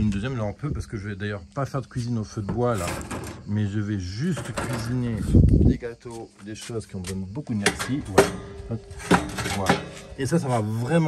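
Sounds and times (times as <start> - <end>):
brick clanking against metal: 2.5 - 3.6, 4.2 - 5.2, 7.6 - 10.7.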